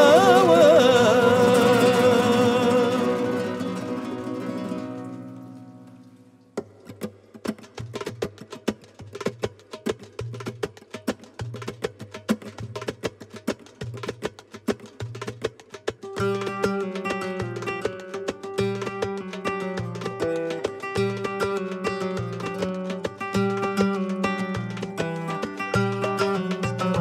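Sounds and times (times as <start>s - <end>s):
darbuka rhythm: 0.0s - 5.3s, 6.5s - 27.0s.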